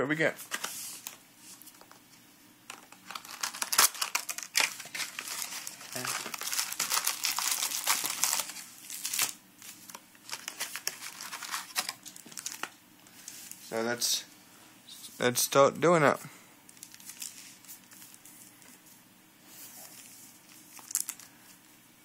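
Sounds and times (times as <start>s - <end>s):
plastic and foil crinkling: 2.7s - 13.7s, 16.7s - 18.8s, 19.6s - 21.6s.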